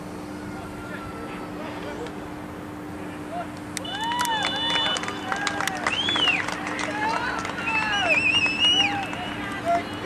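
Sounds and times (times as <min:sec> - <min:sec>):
people shouting and yelling: 0:03.1 - 0:10.0.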